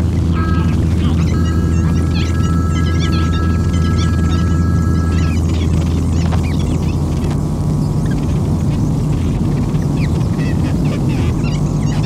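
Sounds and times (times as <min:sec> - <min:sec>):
loud low hum: 0:00.0 - 0:12.0
steady high tones: 0:00.2 - 0:06.7.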